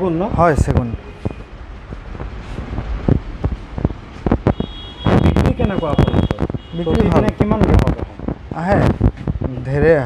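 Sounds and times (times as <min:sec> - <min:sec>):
phone microphone handling noise: 0:01.2 - 0:09.5.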